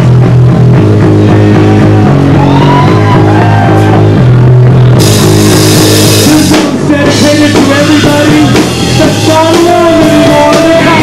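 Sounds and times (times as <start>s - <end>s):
punk band playing live: 0.0s - 11.0s.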